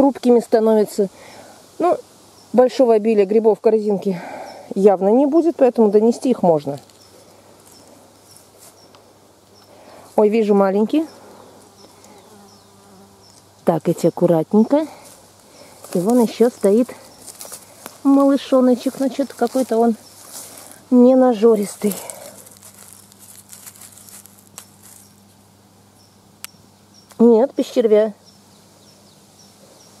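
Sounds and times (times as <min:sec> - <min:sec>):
rustling dry leaves and grass: 0:00.0 - 0:13.7, 0:14.3 - 0:26.3
insect buzzing faintly: 0:00.0 - 0:30.0.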